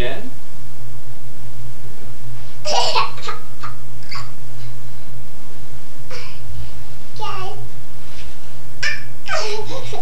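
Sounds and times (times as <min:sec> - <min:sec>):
toddler laughing: 0:02.6 - 0:04.4, 0:08.8 - 0:10.0.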